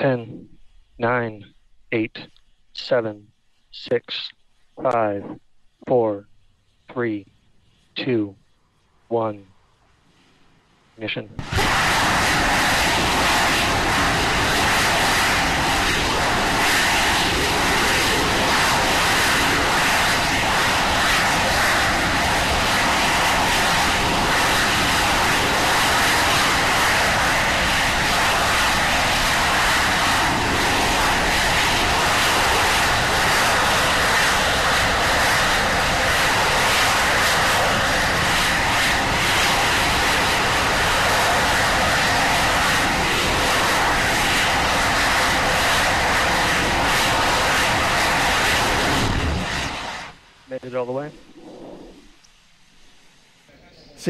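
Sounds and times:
rocket engines firing: 0:11.0 - 0:52.1.

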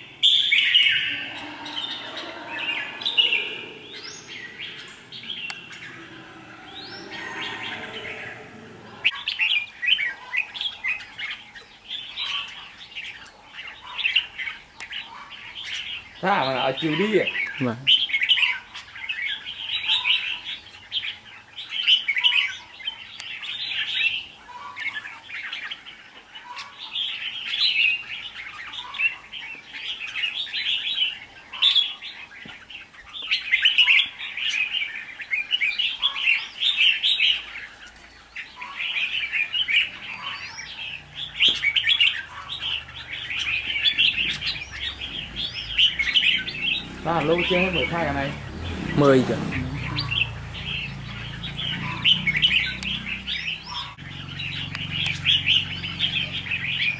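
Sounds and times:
bird singing warbled phrases: 0:00.0 - 0:56.9.

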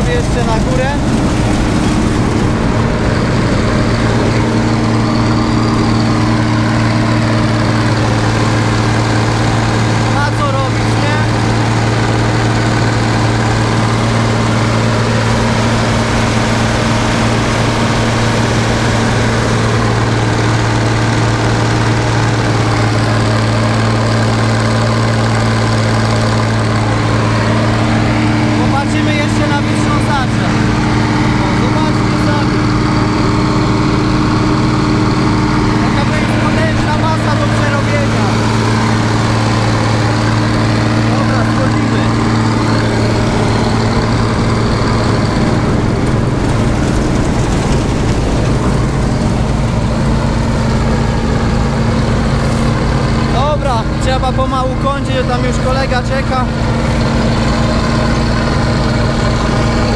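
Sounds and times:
diesel engine labouring: 0:00.0 - 0:59.9.

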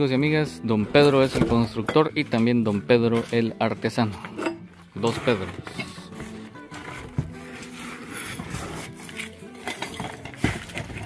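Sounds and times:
background music: 0:00.0 - 0:11.0
concrete rubble clinking and knocking: 0:09.3 - 0:11.0.

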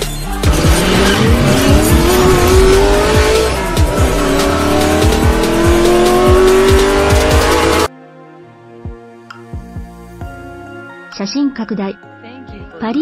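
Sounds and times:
hip-hop music: 0:00.0 - 0:11.3
race car engine revving: 0:00.4 - 0:07.9.

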